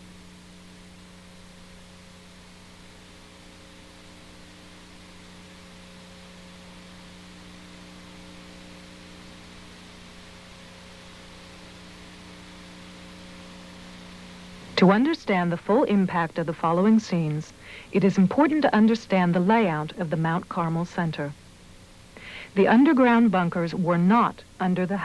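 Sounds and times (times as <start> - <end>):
constant hiss: 0.0 - 25.0
electrical hum: 0.0 - 25.0.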